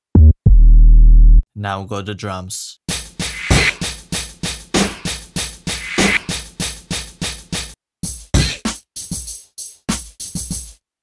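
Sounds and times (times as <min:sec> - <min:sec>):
kick and snare hits: 0:03.3 - 0:03.9, 0:04.8 - 0:05.1.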